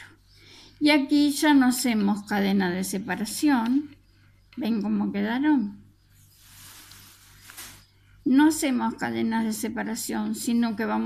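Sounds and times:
soft rustling of yarn: 6.1s - 8.0s.

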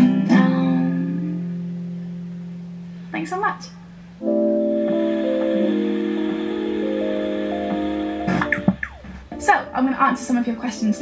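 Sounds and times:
acoustic guitar chord ringing: 3.8s - 10.3s.

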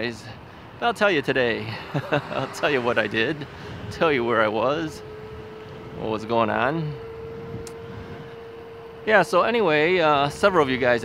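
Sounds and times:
faint wind: 0.0s - 11.0s
electric bike motor whine: 0.6s - 11.0s.

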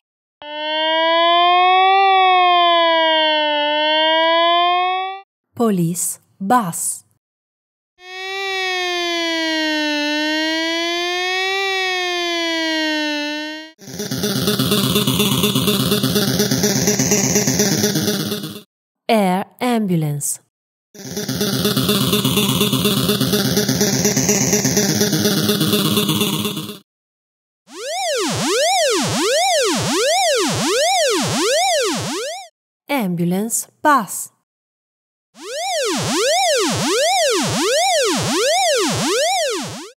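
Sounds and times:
siren slow wail: 0.4s - 5.3s, 8.0s - 18.6s, 21.0s - 26.8s, 27.7s - 32.5s, 35.4s - 39.9s.

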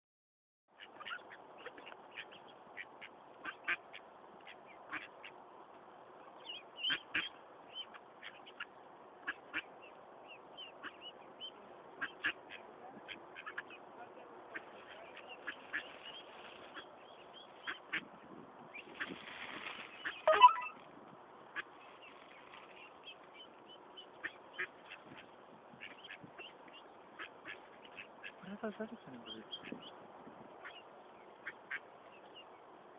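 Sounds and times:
mallards quacking: 0.8s - 5.4s, 6.5s - 9.7s, 10.6s - 17.0s, 17.6s - 18.1s, 19.9s - 20.8s, 22.7s - 29.9s, 31.4s - 31.9s.

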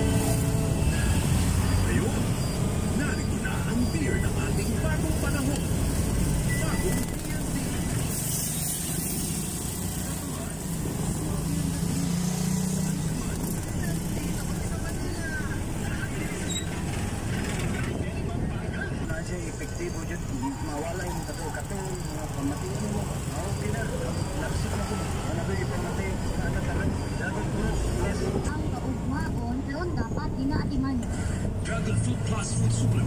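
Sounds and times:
motorcycle engine rumble: 0.0s - 27.3s.

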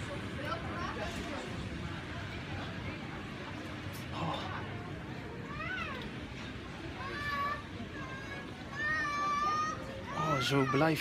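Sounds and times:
shop background noise: 0.0s - 11.0s.

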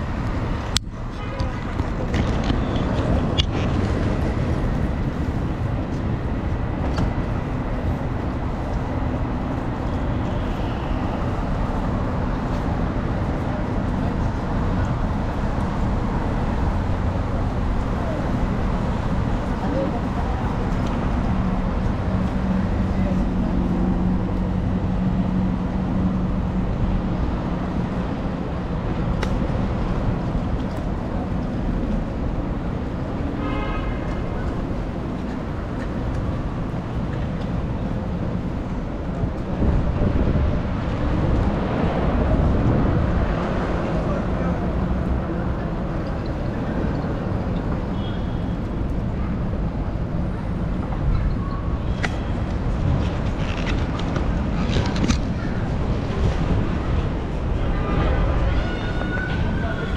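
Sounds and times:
road noise: 0.0s - 59.9s
vehicles passing: 0.0s - 59.9s.

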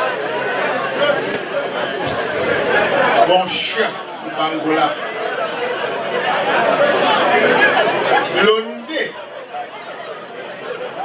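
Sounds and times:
babble of many voices: 0.0s - 11.0s.

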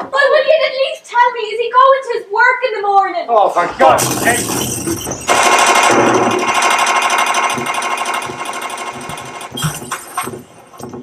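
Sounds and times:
rapid machine-gun rattling: 5.3s - 10.3s.

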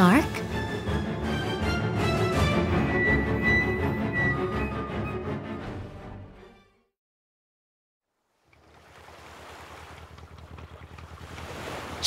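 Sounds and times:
boat motor thrumming: 8.3s - 12.0s
ocean waves: 8.3s - 12.0s.

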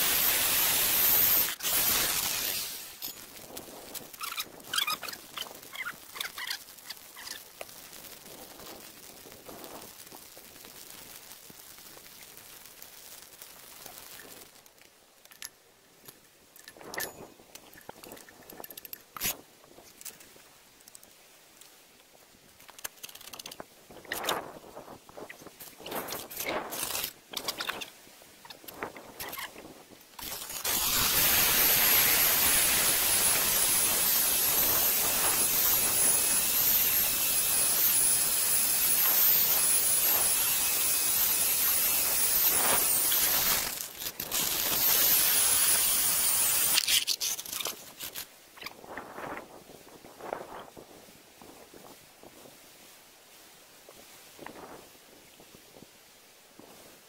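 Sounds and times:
core drill whining into stone: 0.0s - 3.2s, 30.2s - 48.2s
clicks and knocks of drill rig: 15.2s - 20.3s, 22.6s - 24.5s, 42.5s - 48.8s.

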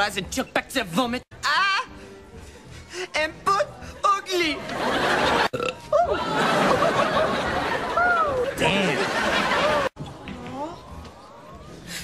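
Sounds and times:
studio audience laughing: 4.6s - 10.0s.

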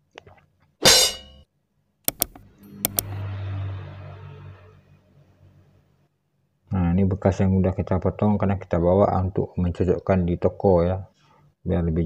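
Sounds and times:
sharp plastic clicks: 2.0s - 3.1s.

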